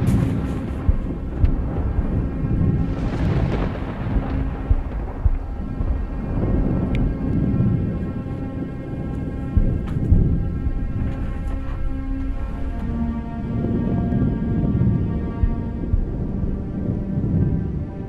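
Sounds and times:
low rolling thunder: 0:00.0 - 0:17.8
suspense music drone: 0:00.0 - 0:18.0.

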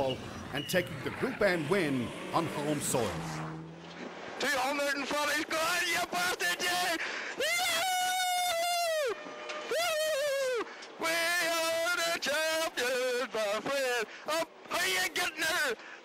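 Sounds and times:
men whooping and yelling: 0:04.8 - 0:15.8.

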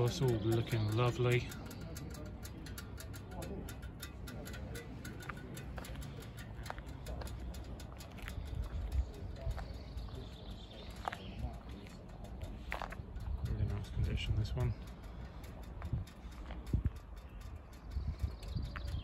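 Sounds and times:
footsteps on gritty concrete: 0:06.6 - 0:13.8.

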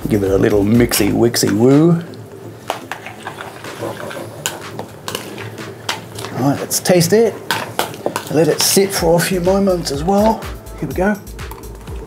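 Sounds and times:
spoon scraping plastic bowl: 0:02.8 - 0:06.4.

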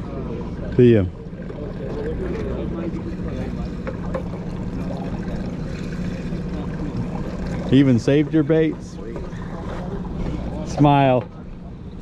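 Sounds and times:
boat engine idling: 0:00.0 - 0:12.0
faint voices: 0:00.0 - 0:12.0.

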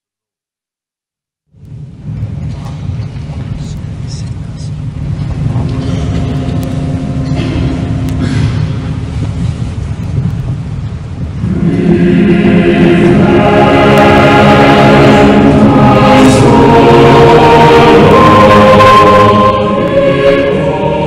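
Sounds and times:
low rumble: 0:01.6 - 0:21.0
choir singing held notes: 0:05.6 - 0:09.4, 0:11.4 - 0:21.0.

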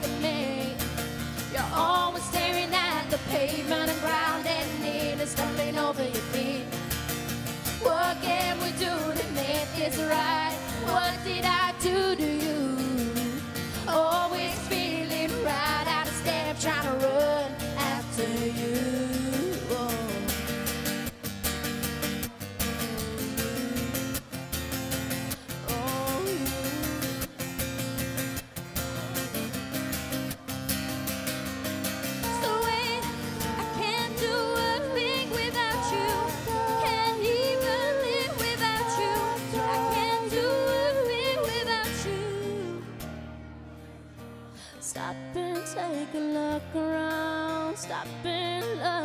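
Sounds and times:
woman singing: 0:00.0 - 0:06.8, 0:07.7 - 0:20.6, 0:22.2 - 0:24.2, 0:25.4 - 0:27.4, 0:32.2 - 0:43.0, 0:44.7 - 0:49.0
acoustic guitar: 0:00.0 - 0:49.0
woman singing long note: 0:32.3 - 0:41.4.

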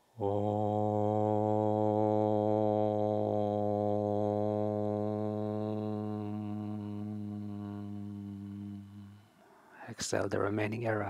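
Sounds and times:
man chanting om: 0:00.2 - 0:09.2.

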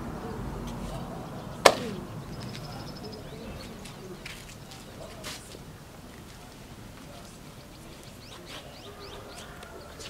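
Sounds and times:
sharp hand clap: 0:01.6 - 0:02.0.

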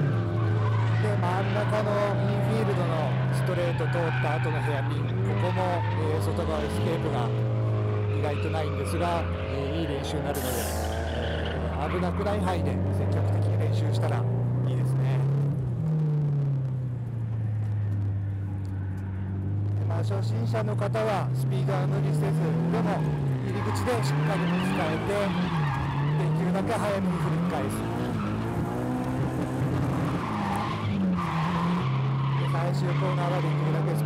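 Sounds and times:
tyres squealing: 0:00.0 - 0:12.9, 0:22.2 - 0:34.0
car engine revving hard: 0:20.9 - 0:34.0.

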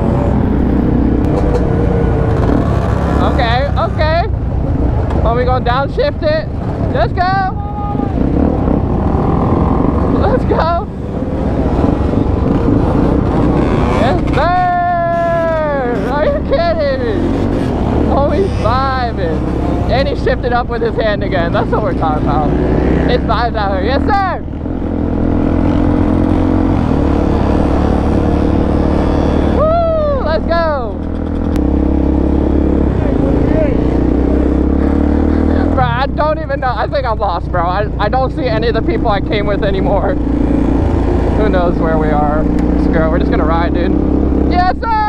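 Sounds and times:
motorcycle and quad engines rumbling: 0:00.0 - 0:45.0.

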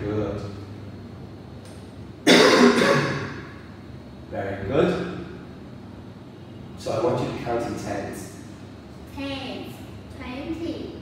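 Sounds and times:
man coughing: 0:02.2 - 0:03.4.

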